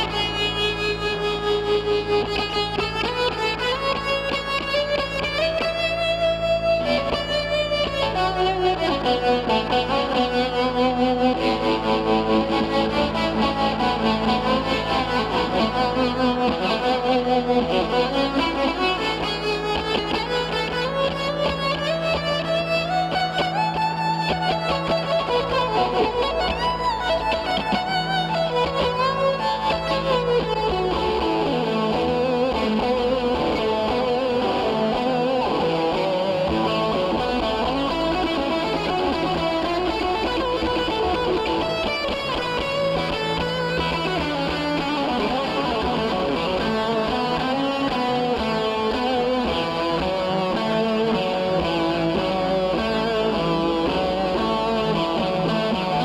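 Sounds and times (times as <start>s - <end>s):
electric guitar lead with slides: 0.0s - 56.0s.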